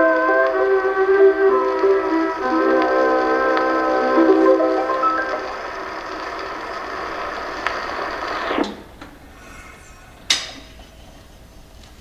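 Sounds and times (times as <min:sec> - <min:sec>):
held chord from phonograph: 0:00.0 - 0:08.9
record surface hiss: 0:00.0 - 0:12.0
faint record ticks: 0:01.2 - 0:09.2.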